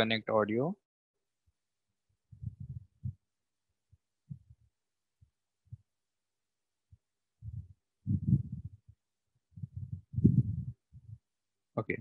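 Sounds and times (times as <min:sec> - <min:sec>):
muffled voice: 0:11.8 - 0:12.0.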